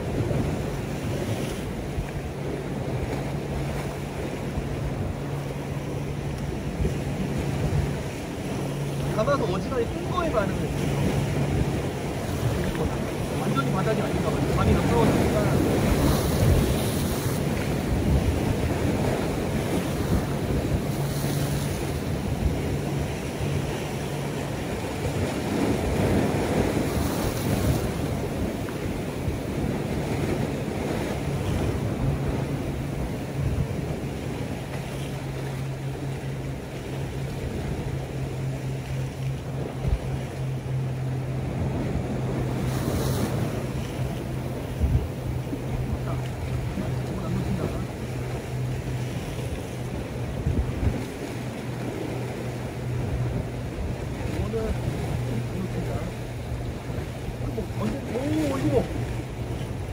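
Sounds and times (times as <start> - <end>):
sea waves washing against rocks: 0.0 - 59.9
wind buffeting microphone: 0.0 - 59.9.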